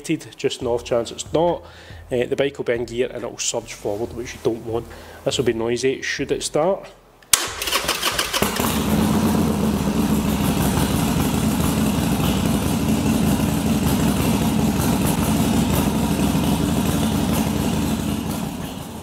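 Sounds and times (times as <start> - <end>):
motorcycle starter cranking: 7.3 - 9.4
motorcycle engine running: 8.0 - 19.0.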